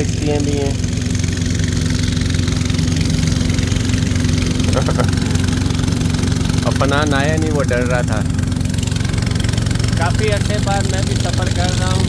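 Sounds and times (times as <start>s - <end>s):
boat engine drone: 0.0s - 12.0s.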